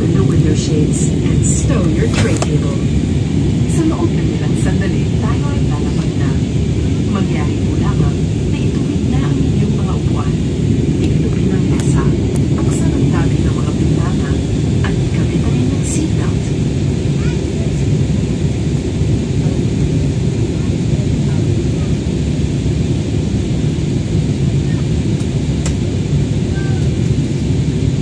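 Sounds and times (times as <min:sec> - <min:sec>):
faint passengers' voices: 0:00.0 - 0:27.8
jet airliner cabin drone: 0:00.0 - 0:28.0.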